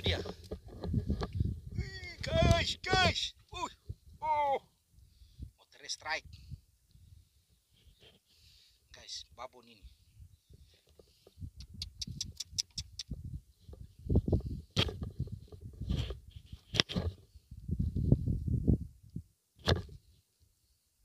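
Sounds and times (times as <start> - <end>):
microphone handling noise: 0.0 - 3.2, 10.9 - 20.1
wind rumbling on microphone: 0.0 - 4.4, 6.2 - 7.3, 9.8 - 20.2
sharp clicks: 11.6 - 13.2.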